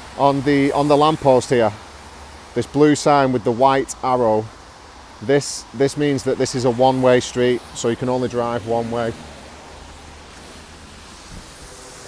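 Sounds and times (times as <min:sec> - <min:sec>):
street background hiss: 0:00.0 - 0:12.0
wind rumble on microphone: 0:11.1 - 0:12.0.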